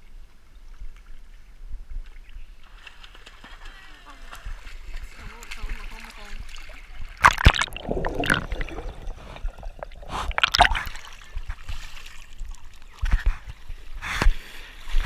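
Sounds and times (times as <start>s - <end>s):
pool water splashing: 2.6s - 14.7s
muffled underwater gurgling: 7.2s - 10.9s.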